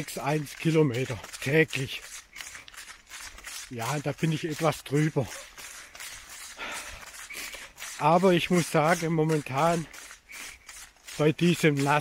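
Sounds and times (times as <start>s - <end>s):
person speaking: 0.0s - 2.6s, 3.5s - 5.6s, 6.6s - 10.1s, 11.0s - 12.0s
runner breathing hard: 2.0s - 3.7s, 5.2s - 11.2s.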